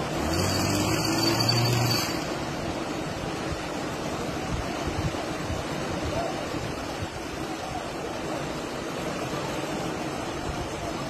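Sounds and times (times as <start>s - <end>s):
mud and water rushing: 0.0s - 11.0s
engine revving: 0.1s - 2.3s.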